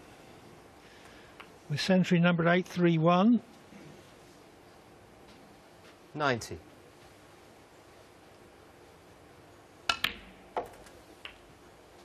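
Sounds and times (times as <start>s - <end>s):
snooker balls clicking: 9.9s - 11.6s
balls knocking faintly: 9.9s - 12.0s.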